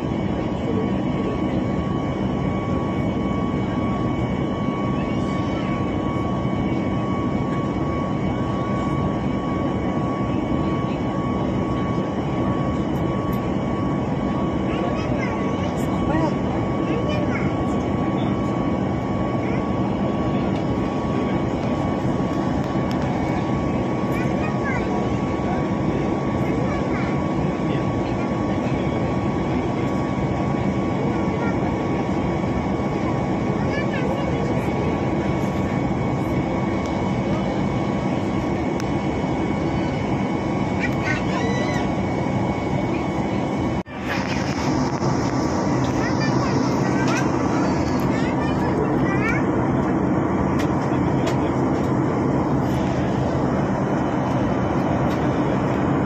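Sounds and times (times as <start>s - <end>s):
engine and airflow rumble: 0.0s - 56.0s
steady high whine: 0.0s - 56.0s.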